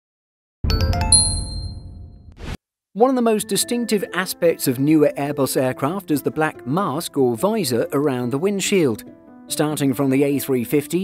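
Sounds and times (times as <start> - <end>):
bell-like dings: 0.7 - 2.0.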